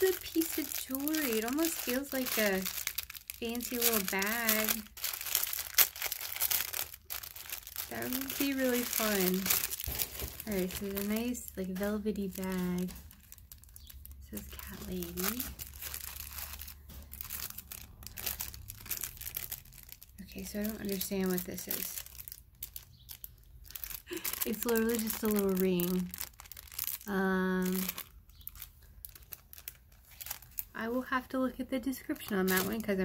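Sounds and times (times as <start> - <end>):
wrapping crinkling and rustling: 0.0 - 33.0.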